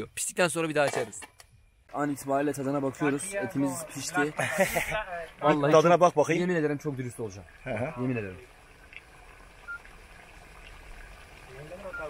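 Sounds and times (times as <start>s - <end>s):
faint beeps: 11.8s - 12.0s.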